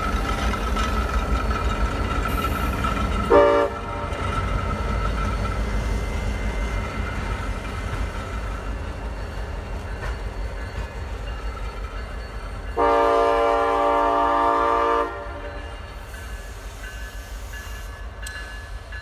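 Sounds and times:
diesel locomotives rumbling: 0.0 - 19.0
train air horn blast: 3.3 - 4.0, 12.8 - 15.6.

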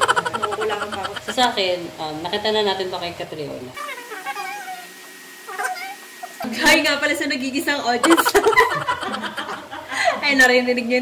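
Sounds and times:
cat meowing: 3.8 - 4.9, 5.5 - 6.4.

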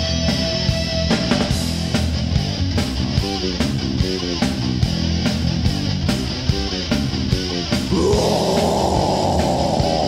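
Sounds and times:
bass and drums: 0.0 - 10.0
distorted metal band sound: 7.3 - 10.0.

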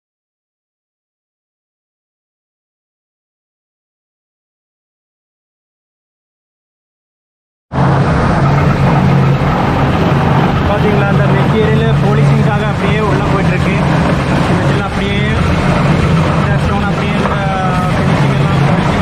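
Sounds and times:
stone-processing machinery running: 7.8 - 19.0
faint voices: 8.4 - 19.0.

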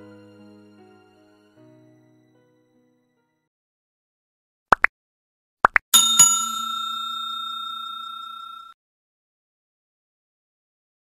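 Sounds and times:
bell chime ringing: 6.0 - 8.8.

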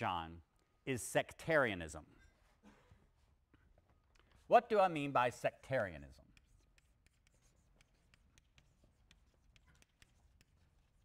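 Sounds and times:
chalk scraping on blackboard: 6.0 - 11.0.

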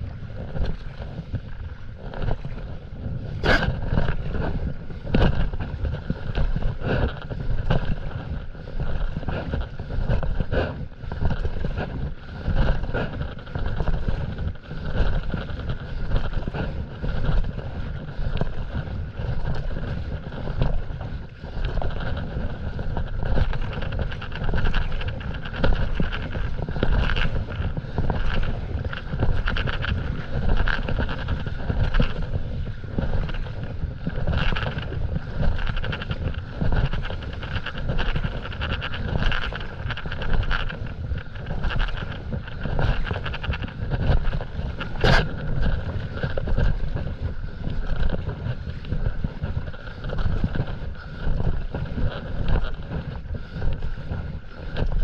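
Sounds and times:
paddle strokes splashing water: 0.0 - 55.0
wind buffeting microphone: 0.0 - 55.0.

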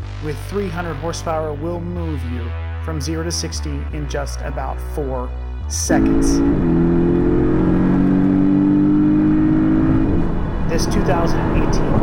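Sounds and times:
car engine at high revs: 6.0 - 12.0.

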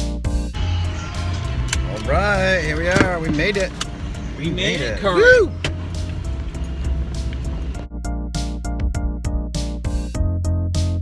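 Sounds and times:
car idling: 0.6 - 7.8.

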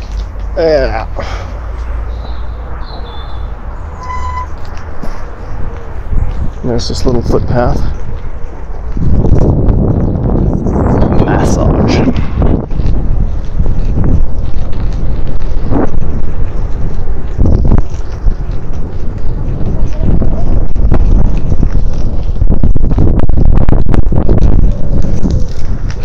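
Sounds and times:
wind buffeting microphone: 0.0 - 26.0
small rattles and clicks: 4.5 - 26.0.

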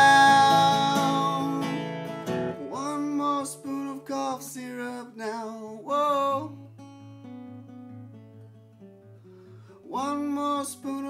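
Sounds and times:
person singing: 0.0 - 6.7, 9.8 - 11.0
acoustic guitar picked softly: 0.0 - 11.0.

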